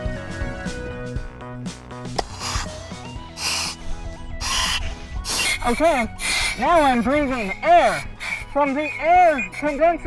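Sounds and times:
background music: 0.0s - 10.0s
breathing through face mask regulator: 2.2s - 10.0s.

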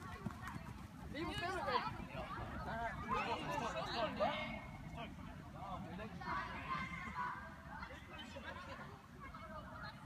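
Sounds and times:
children's footsteps on artificial turf: 0.0s - 4.2s.

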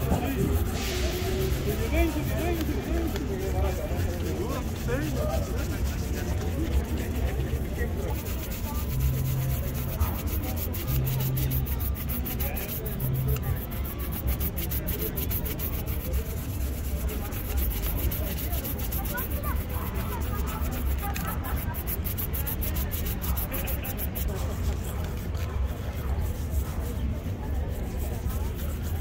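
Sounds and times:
brushes rubbing a leather shoe: 0.0s - 29.0s.

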